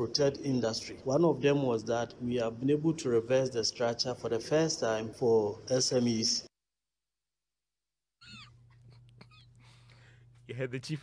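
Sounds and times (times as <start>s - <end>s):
faint steady hum: 0.0s - 6.5s, 8.3s - 11.0s.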